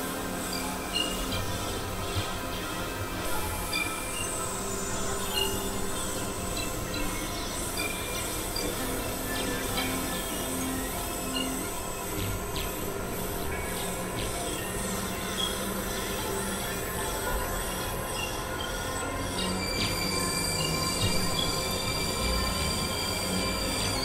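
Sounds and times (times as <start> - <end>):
synthesizer drone tones: 0.0 - 24.0.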